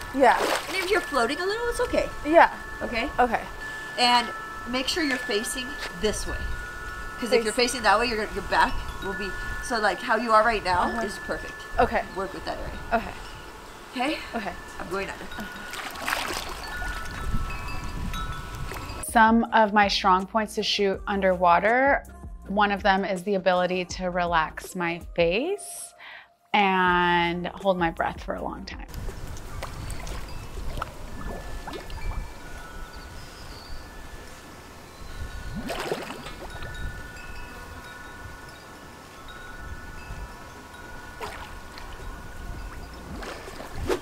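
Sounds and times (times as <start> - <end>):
water splash: 0.0 - 1.1, 15.7 - 17.2, 35.6 - 36.7, 41.2 - 42.0, 43.0 - 44.0
pool water splashing: 0.0 - 2.5, 14.9 - 17.2, 29.0 - 32.5, 35.6 - 36.7, 40.9 - 44.0
chime tones ringing: 0.0 - 19.0, 29.8 - 43.1
wind rumbling on microphone: 0.0 - 19.5, 28.8 - 44.0.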